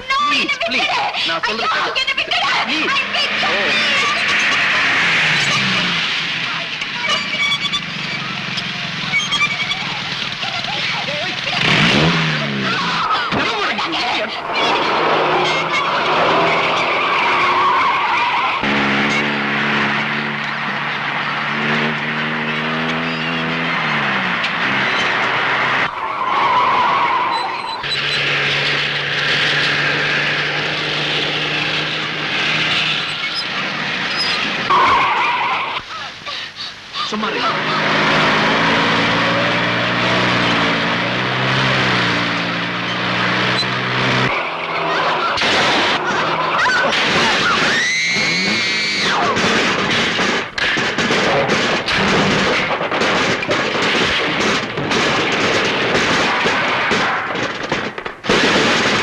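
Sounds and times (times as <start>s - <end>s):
car engines running hard: 0.0s - 59.0s
tyres skidding on dirt road: 0.0s - 59.0s
short tyre squeals: 2.9s - 6.1s, 6.9s - 10.6s, 14.5s - 36.0s, 36.6s - 49.4s.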